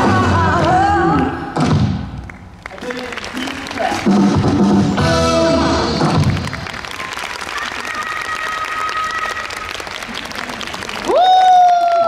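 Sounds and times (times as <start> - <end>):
backing music with singing: 0.0 - 2.2, 3.4 - 6.5.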